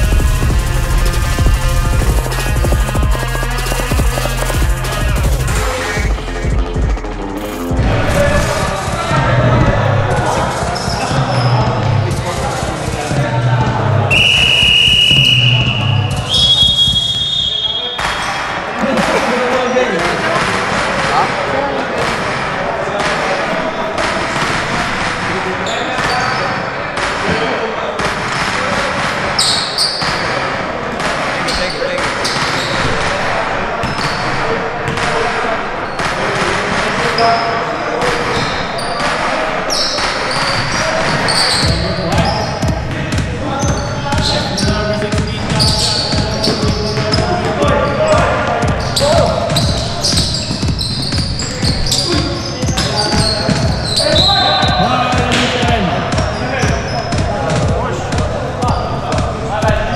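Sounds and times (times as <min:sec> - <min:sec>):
echoing voices: 0:00.0 - 0:59.9
shrill whistle blasts: 0:14.1 - 0:18.4, 0:52.8 - 0:54.8.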